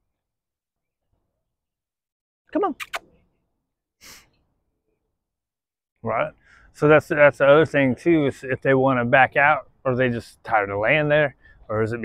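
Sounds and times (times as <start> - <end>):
short breathy exhale: 4.0 - 4.4.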